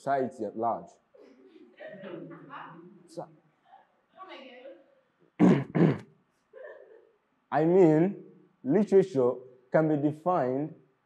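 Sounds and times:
man clearing his throat: 5.4 - 6.0.

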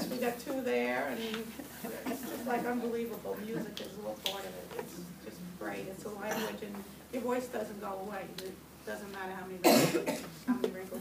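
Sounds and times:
loud short cough: 9.6 - 10.3.

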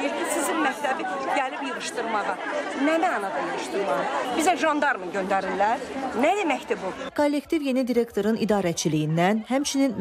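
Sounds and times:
crowd chatter: 0.0 - 10.0
woman talking: 0.0 - 10.0.

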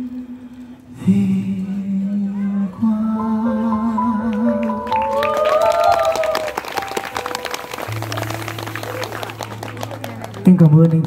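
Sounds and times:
audience applause: 4.6 - 11.0
audience whooping: 4.7 - 10.5.

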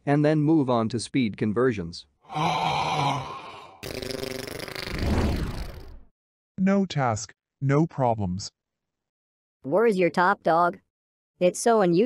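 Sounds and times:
low grunt-like vocal sound: 2.3 - 4.3.

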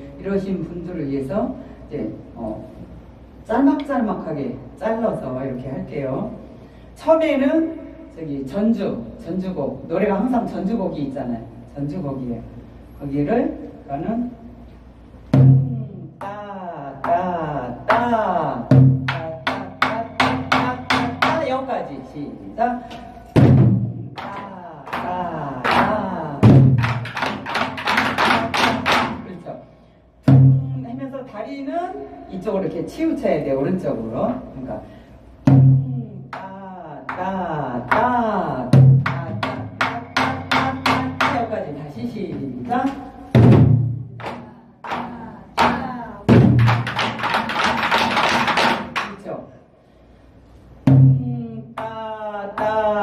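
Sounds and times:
person speaking: 15.4 - 35.0, 35.6 - 43.3, 44.2 - 47.9, 51.1 - 53.0
barrel drums struck with sticks: 17.8 - 21.5, 23.3 - 29.3, 38.7 - 41.5, 43.3 - 49.0
deep barrel drum booms: 23.4 - 24.2, 35.4 - 36.0, 43.3 - 44.2.

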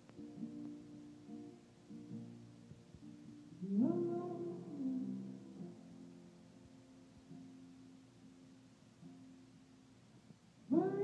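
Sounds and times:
soft sustained instrumental notes: 0.0 - 10.1
high male voice singing: 3.6 - 5.7, 10.7 - 11.0.

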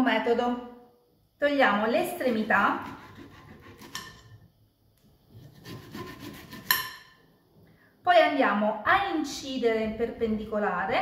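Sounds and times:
knife sawing through fruit peel: 2.2 - 4.1, 5.3 - 6.8.

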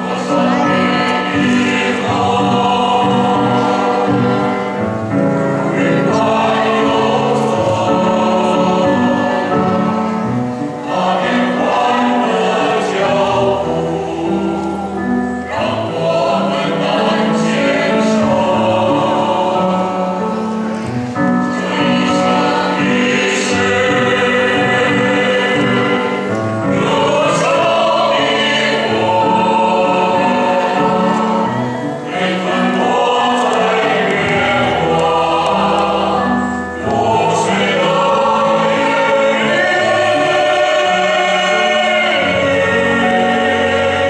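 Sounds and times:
violins playing: 0.0 - 20.8, 21.6 - 44.0
choir singing in harmony: 0.0 - 44.0.

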